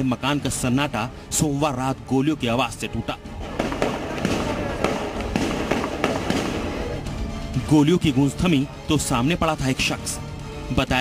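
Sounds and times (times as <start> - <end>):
music: 0.0 - 11.0
rapid gunshots: 3.5 - 6.9.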